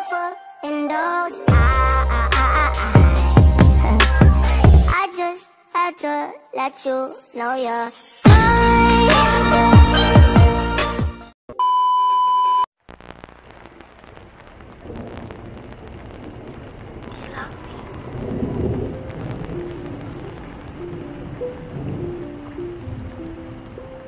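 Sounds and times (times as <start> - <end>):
slow melody of held notes: 19.1 - 24.0.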